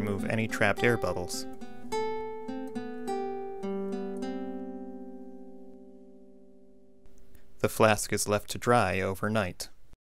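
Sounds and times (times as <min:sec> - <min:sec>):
guitar plucking notes: 0:00.0 - 0:07.1.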